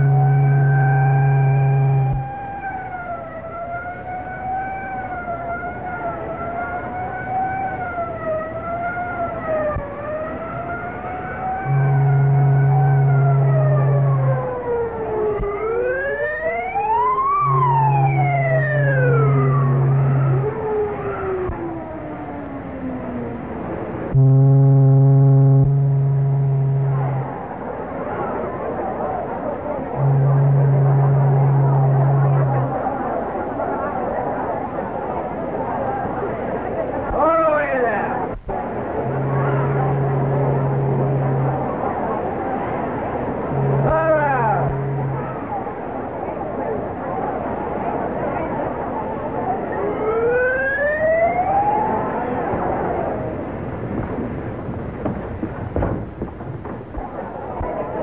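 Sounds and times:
higher multi-tone horn: 0.0 - 2.7, 11.2 - 20.8, 24.1 - 27.5, 29.8 - 33.0, 38.4 - 45.9
high wavering whistling tones: 0.0 - 2.8, 11.6 - 21.5
deep foghorn blasts: 0.0 - 4.8, 5.5 - 21.8, 23.6 - 34.1, 38.2 - 48.8.

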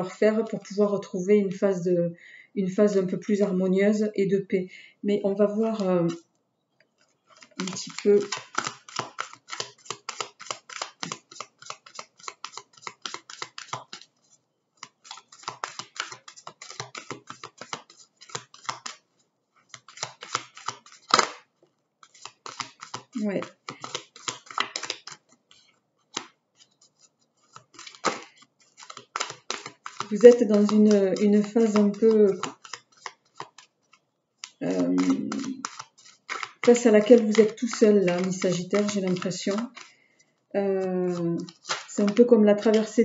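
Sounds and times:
cards being shuffled: 5.6 - 6.2, 7.0 - 40.0, 40.7 - 43.0
card snap: 19.9 - 21.4, 41.5 - 41.9.

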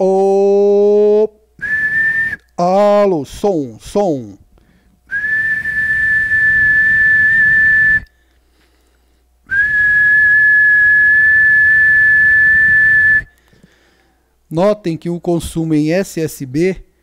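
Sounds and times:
person whistling steady note: 1.6 - 2.6, 5.1 - 8.2, 9.5 - 13.5.

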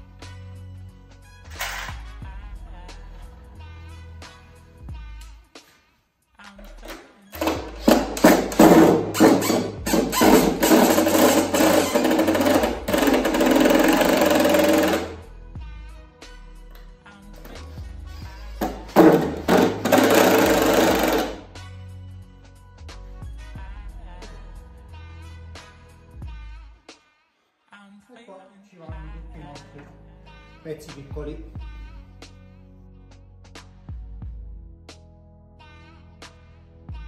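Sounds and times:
drill driving screws into wood: 1.5 - 2.0, 7.4 - 15.2, 18.6 - 21.5.

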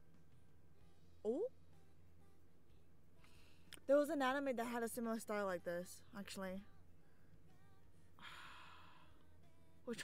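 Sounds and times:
person sighing: 8.2 - 9.0.

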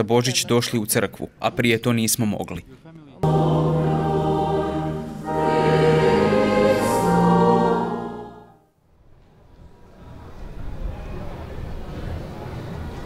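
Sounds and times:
church choir singing a hymn: 3.2 - 8.6.

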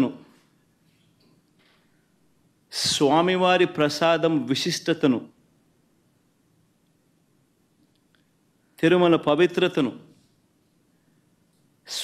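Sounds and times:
man speaking: 0.0 - 0.3, 2.7 - 5.4, 8.8 - 10.2.

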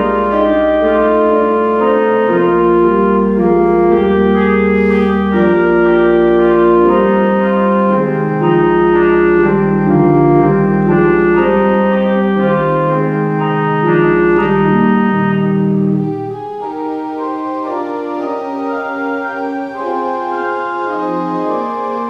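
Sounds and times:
church organ chords: 0.0 - 22.0
deep organ pedal bass: 0.0 - 22.0.

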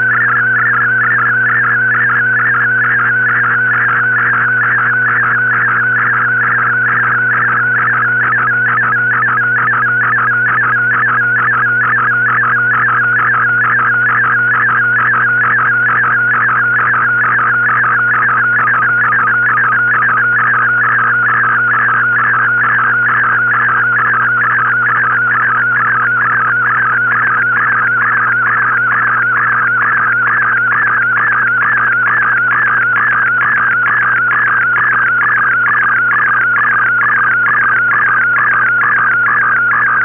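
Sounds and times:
wavering data transmission tone: 0.0 - 40.0.

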